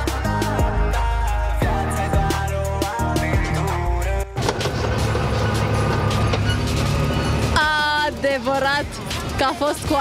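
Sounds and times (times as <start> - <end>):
background music: 0.0 - 10.0
vehicle engine roaring: 1.0 - 10.0.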